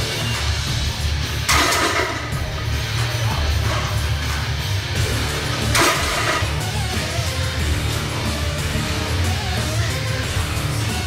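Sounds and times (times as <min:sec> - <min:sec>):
rock music with electric guitar: 0:00.0 - 0:11.0
barbell clanking on metal pins: 0:01.5 - 0:02.4.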